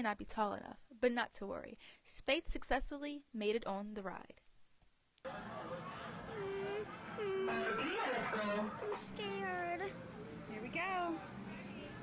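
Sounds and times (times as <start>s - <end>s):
girl making sliding vocal notes: 6.3s - 9.2s.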